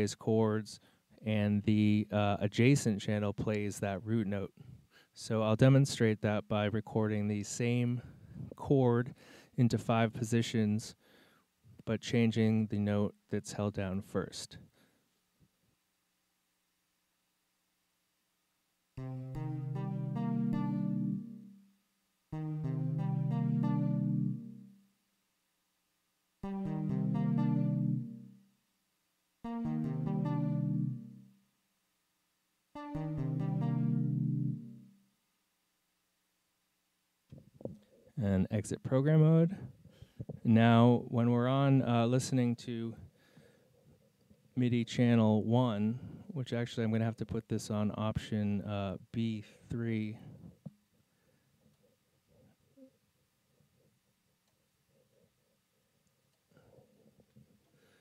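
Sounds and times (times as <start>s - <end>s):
synthesizer chord: 19.0s - 24.8s, 26.4s - 28.5s, 29.5s - 31.4s, 32.8s - 35.0s.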